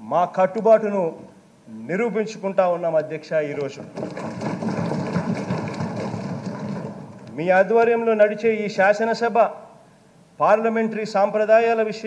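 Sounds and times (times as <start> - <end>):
people thumping desks: 3.8 - 7.3.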